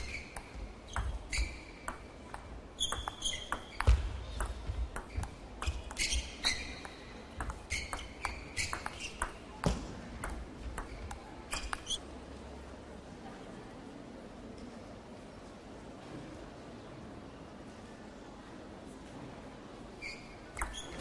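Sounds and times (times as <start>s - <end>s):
shoes squeaking on floor: 0.0s - 9.6s, 10.8s - 12.0s, 20.0s - 21.0s
table tennis ball clicking: 0.0s - 9.6s, 10.2s - 12.0s, 20.6s - 21.0s.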